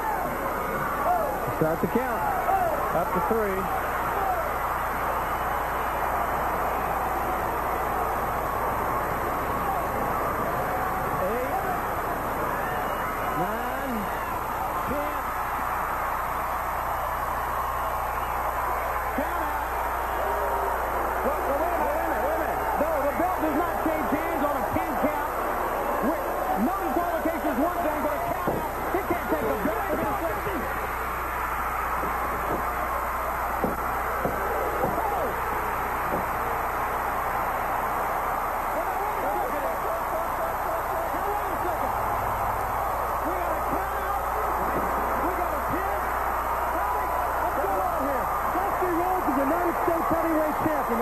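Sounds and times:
crowd shouting and yelling: 0.0s - 51.0s.

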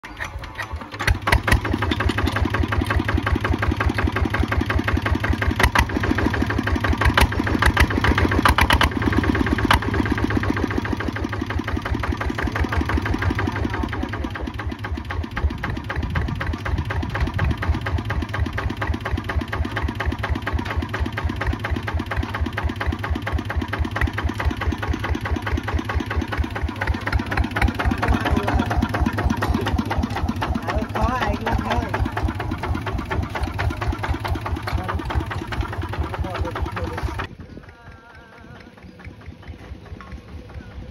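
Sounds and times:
diesel engine chugging: 0.0s - 40.9s.

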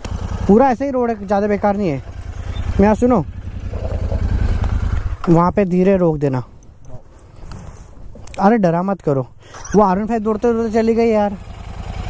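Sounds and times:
motorcycle engine throbbing: 0.0s - 5.7s, 9.8s - 12.0s.

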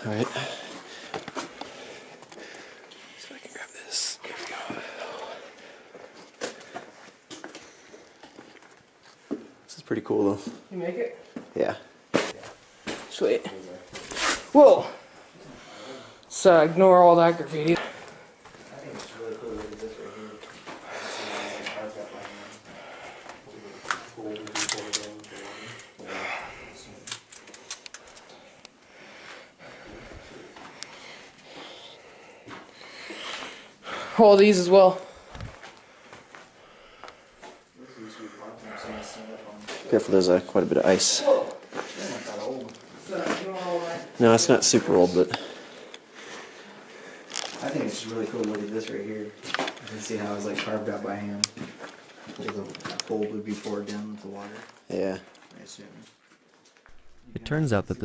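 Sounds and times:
sharp clicks and crackles: 27.0s - 28.8s.

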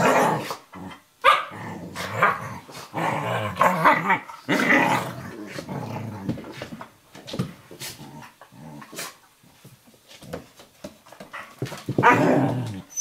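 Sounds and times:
dogs growling: 0.0s - 6.6s, 12.0s - 12.8s
dogs barking: 1.2s - 1.5s.

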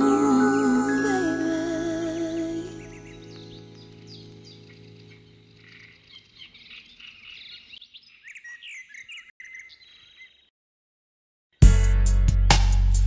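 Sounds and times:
birds chirping and whistling: 2.7s - 10.5s.

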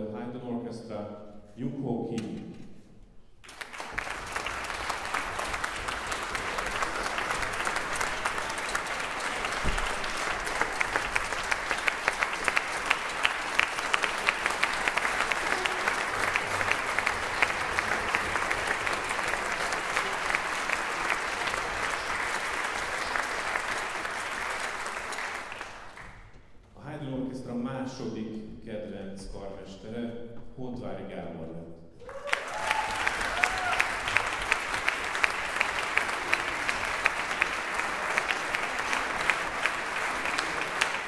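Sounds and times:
audience applauding: 3.4s - 26.2s, 32.0s - 41.0s.

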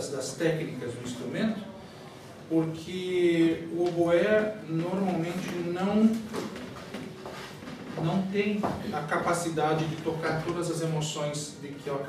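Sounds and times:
man speaking: 0.0s - 1.8s, 2.5s - 6.3s, 8.0s - 12.0s.

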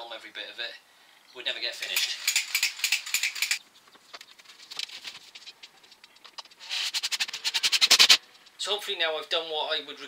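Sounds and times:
quick high clicks: 1.8s - 3.6s.

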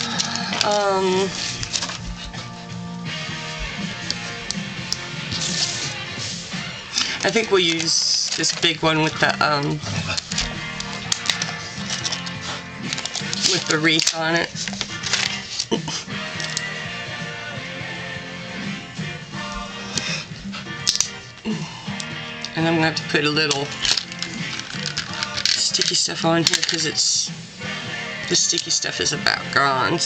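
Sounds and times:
paper and card clicks: 0.0s - 2.1s, 10.0s - 15.8s, 20.8s - 21.2s, 23.4s - 27.0s
background music: 0.0s - 30.0s.

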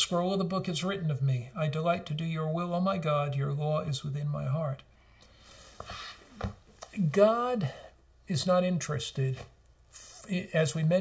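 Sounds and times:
man breathing in: 4.9s - 6.3s.

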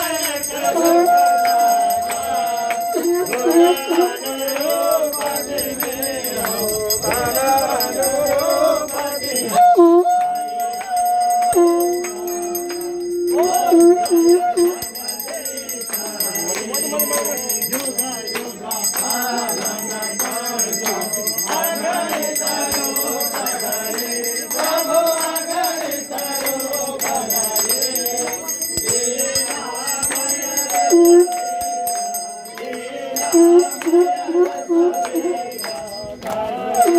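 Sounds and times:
hand bells ringing rapidly: 0.0s - 36.9s
voices chanting and singing: 0.0s - 36.9s.

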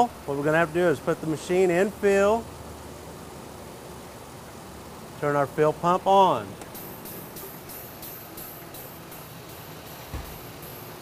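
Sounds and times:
air pump pulsing hiss: 6.7s - 11.0s.

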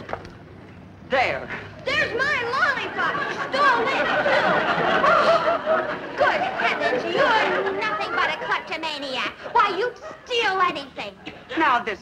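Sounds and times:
people talking over one another: 1.2s - 5.0s, 5.8s - 12.0s.

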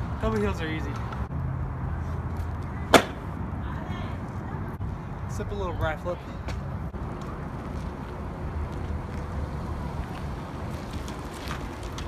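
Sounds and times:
scooter deck and wheels hitting ground: 2.4s - 3.3s.

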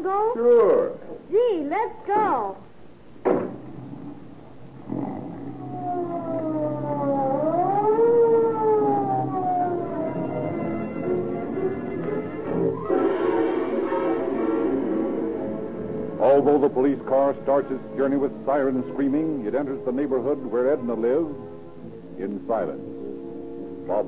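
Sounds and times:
music bridge: 3.7s - 24.0s
police siren wailing: 4.9s - 15.5s.

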